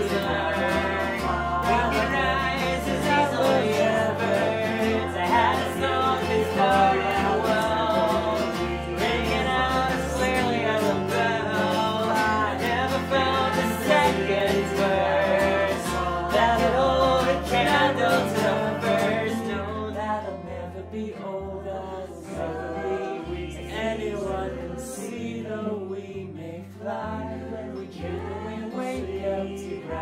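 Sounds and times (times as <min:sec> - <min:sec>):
person singing: 0:00.0 - 0:30.0
plucked upright bass: 0:00.0 - 0:30.0
strummed acoustic guitar: 0:00.0 - 0:30.0.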